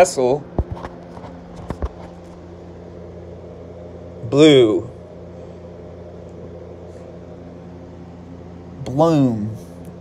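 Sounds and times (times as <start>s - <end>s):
aquarium equipment humming: 0.0s - 10.0s.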